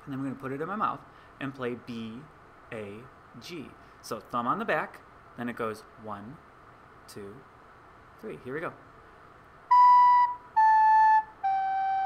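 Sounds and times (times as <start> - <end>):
recorder playing notes: 9.7 - 12.0.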